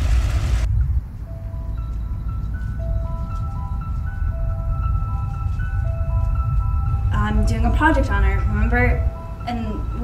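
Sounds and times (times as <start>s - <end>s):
low outdoor rumble: 0.0s - 10.0s
slow background music: 0.6s - 10.0s.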